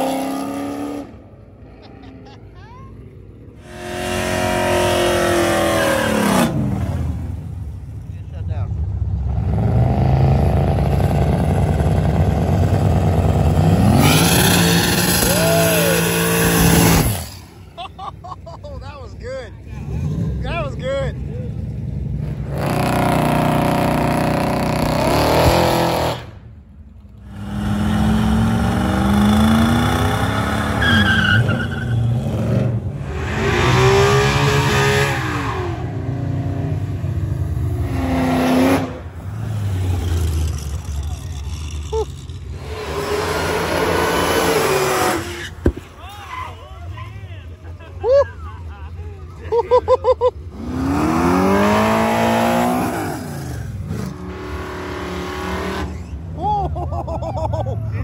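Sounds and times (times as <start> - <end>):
car engines revving hard: 0.0 - 2.4, 3.4 - 45.8, 47.6 - 58.0
tyres squealing on pavement: 30.4 - 32.3, 44.8 - 47.3.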